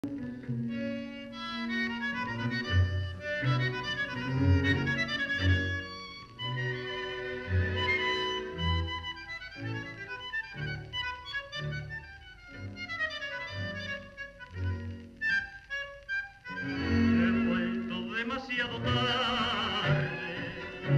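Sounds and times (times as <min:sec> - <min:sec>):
tango orchestra music: 0:00.0 - 0:20.9.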